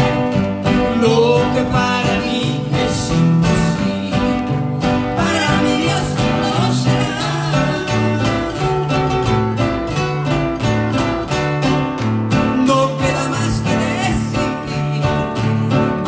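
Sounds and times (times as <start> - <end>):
man singing: 0.0 - 9.3, 12.3 - 16.0
strummed acoustic guitars: 0.0 - 16.0
woman singing: 1.0 - 9.1, 12.6 - 16.0.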